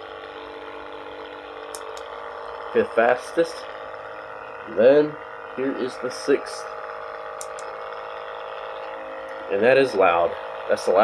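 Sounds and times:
massage gun motor hum and whine: 0.0s - 11.0s.

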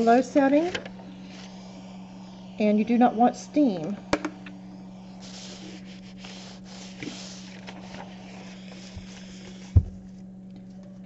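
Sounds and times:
iron sliding over paper: 0.0s - 10.2s.

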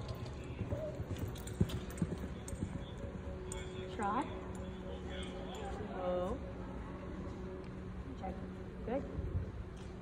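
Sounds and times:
horse hoofbeats on sand: 0.0s - 3.0s.

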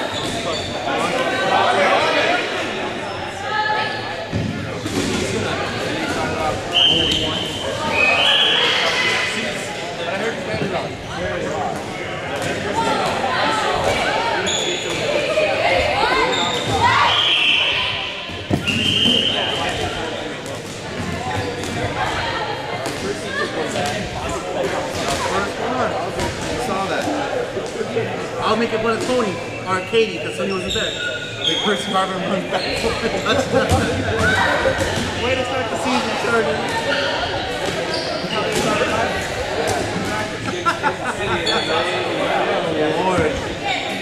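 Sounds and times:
players talking and calling out: 0.0s - 44.0s.

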